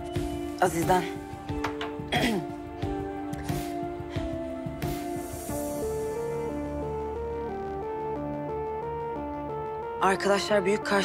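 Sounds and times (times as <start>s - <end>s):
background score with soft beat: 0.0s - 11.0s
throat clearing: 2.1s - 2.6s.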